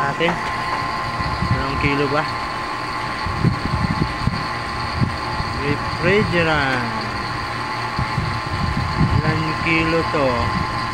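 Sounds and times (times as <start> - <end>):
vacuum pump humming: 0.0 - 10.9.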